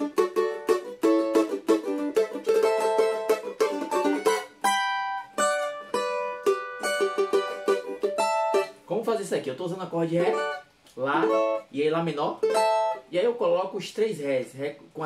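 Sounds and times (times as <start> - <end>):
small guitar strummed chords: 0.0 - 8.9, 10.1 - 13.1.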